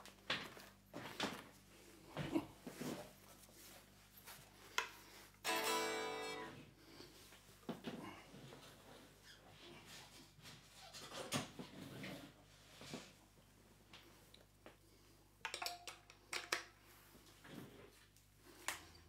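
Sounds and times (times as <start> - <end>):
guitar chord ringing: 5.4 - 6.6.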